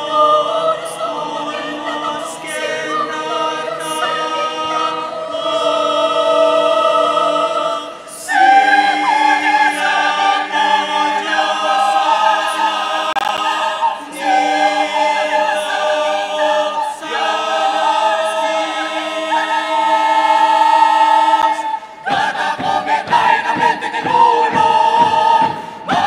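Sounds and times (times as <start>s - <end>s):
choir singing unaccompanied: 0.0s - 26.0s.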